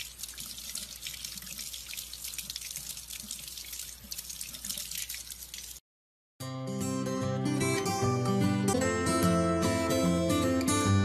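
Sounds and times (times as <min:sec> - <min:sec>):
tap water splattering: 0:00.0 - 0:05.8.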